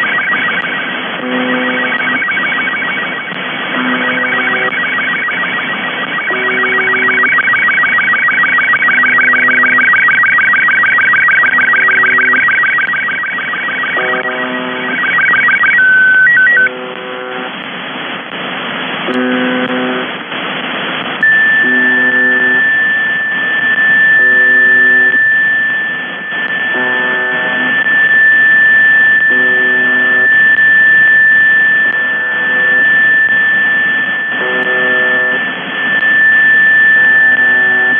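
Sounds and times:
fast warbling tones: 0.0 - 17.5
short beeps: 0.0 - 17.5, 21.2 - 37.9
steady high tone: 0.0 - 17.6, 21.2 - 37.9
coarse radio buzz: 0.0 - 17.7, 19.0 - 20.5, 21.1 - 37.9
radio hiss: 0.0 - 37.9.

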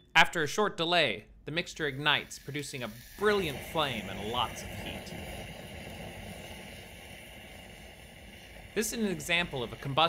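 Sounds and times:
flame burning: 1.7 - 10.0.

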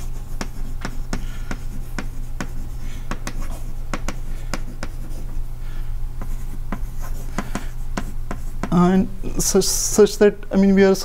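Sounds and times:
chalk tapping and scratching: 0.0 - 5.4, 6.2 - 8.9
steady low hum: 0.0 - 11.0.

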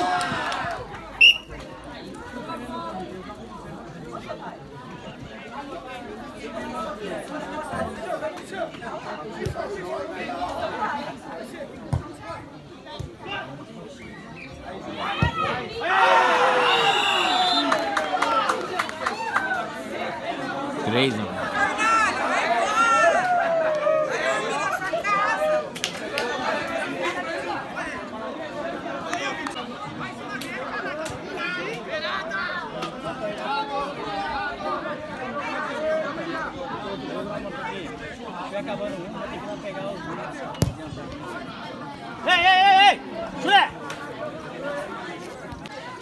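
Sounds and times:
voices calling out and chattering: 0.0 - 46.0.

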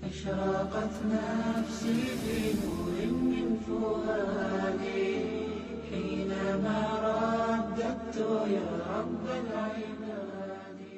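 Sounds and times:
steady low drone: 0.0 - 8.4
melodic chanted vocal: 0.0 - 10.9.

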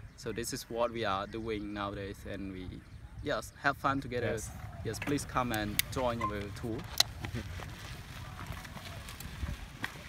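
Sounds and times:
bicycle riding rumble: 4.0 - 10.0.

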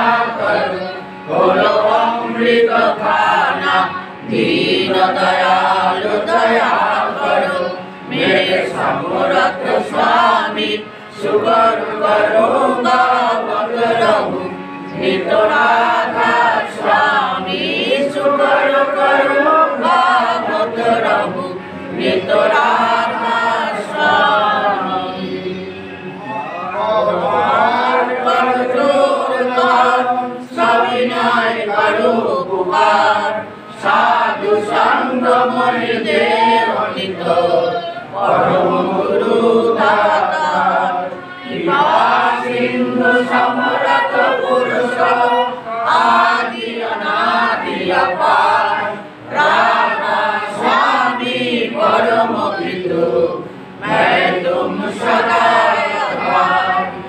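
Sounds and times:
group chanting prayer in unison: 0.0 - 57.0.

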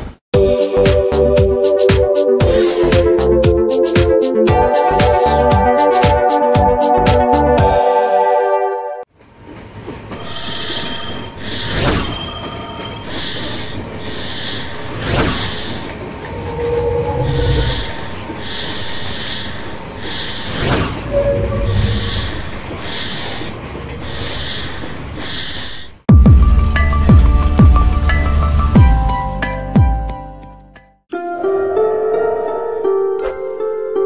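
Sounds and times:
high swishing pulses: 2.4 - 3.9, 4.5 - 8.5, 13.1 - 23.5
whooshes: 4.6 - 6.1, 14.2 - 19.4, 20.1 - 23.4
low rumbles: 15.8 - 18.5.

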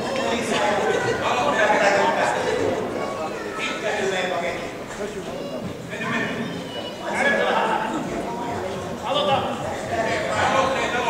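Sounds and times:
people shouting and calling out: 0.0 - 11.0.

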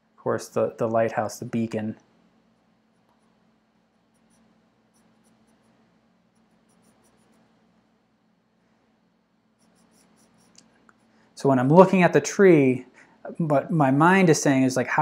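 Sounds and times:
low room hum: 0.0 - 15.0
pencil scratching on paper: 4.0 - 7.6, 9.6 - 11.1.

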